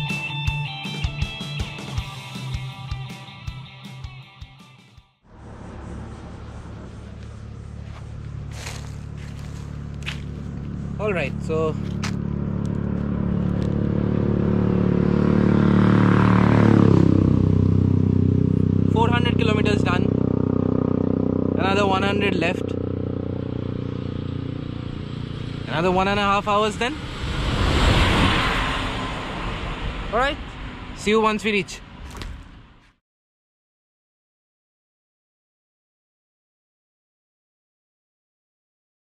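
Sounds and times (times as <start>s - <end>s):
vehicle engine running: 5.3s - 32.8s
footsteps scuffing: 7.0s - 10.8s, 11.8s - 12.2s.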